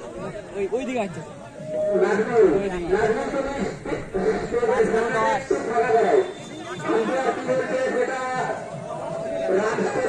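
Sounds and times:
men chattering: 0.0 - 10.0.

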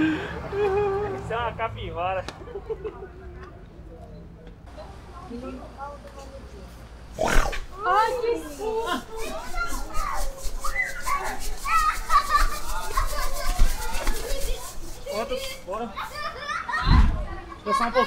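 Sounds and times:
high-pitched voices chattering: 2.6 - 18.0
low thump: 16.8 - 17.3.

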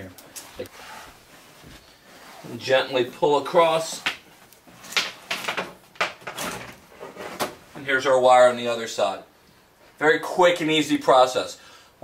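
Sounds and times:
wire scraping along baseboard: 0.4 - 3.0, 6.5 - 7.6.

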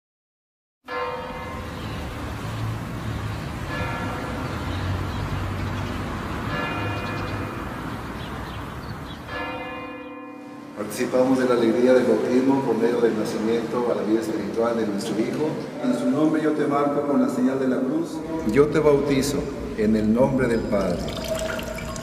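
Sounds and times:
church bell tolling: 0.9 - 2.4, 3.6 - 5.1, 6.4 - 8.0, 9.2 - 13.9.

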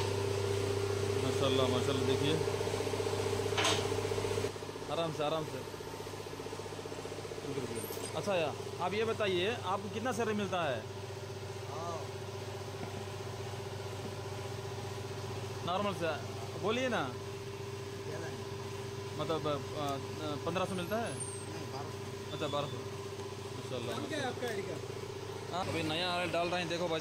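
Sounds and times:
hydraulic pump motor humming: 0.0 - 27.0.

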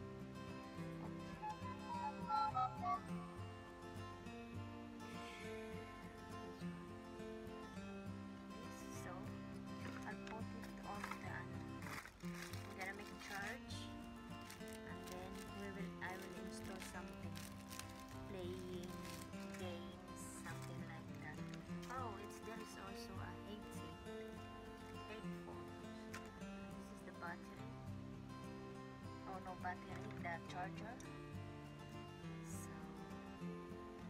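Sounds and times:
acoustic guitar: 0.0 - 34.0.

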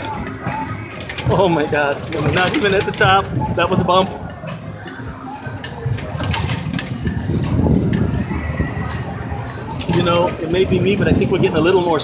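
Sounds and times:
ferris wheel car creaking: 0.0 - 12.0.

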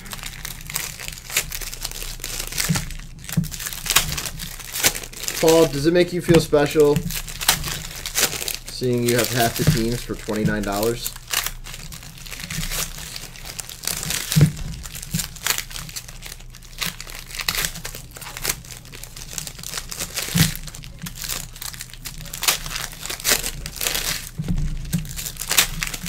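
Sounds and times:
foil wrappers crinkling and tearing: 0.0 - 26.0.

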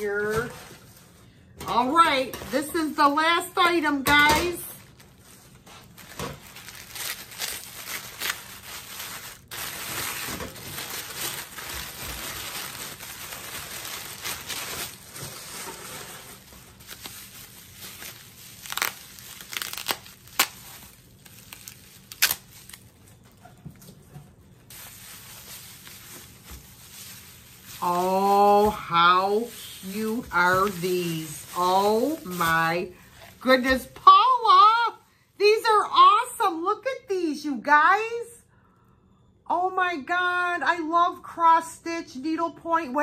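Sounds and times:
wrapping crinkling and rustling: 0.0 - 35.8.

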